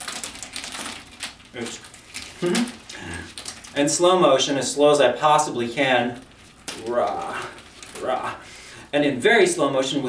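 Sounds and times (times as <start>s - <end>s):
man making vocal sounds: 2.4s - 3.3s, 6.8s - 8.5s.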